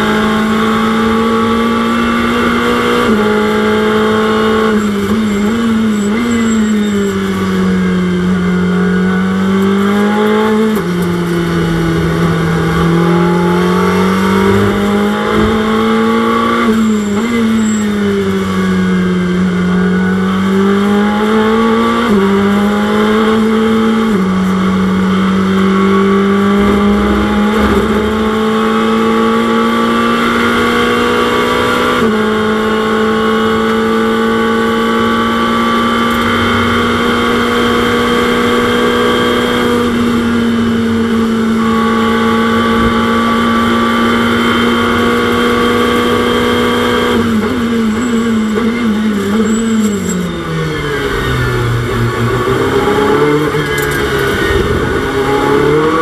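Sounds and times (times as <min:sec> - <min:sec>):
race car engine revving: 0:00.0 - 0:56.0.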